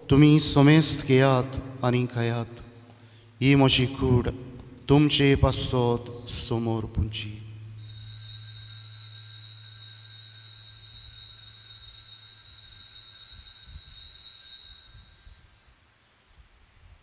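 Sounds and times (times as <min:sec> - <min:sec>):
low hum: 0:04.0 - 0:15.4
altar bell ringing: 0:07.7 - 0:15.8.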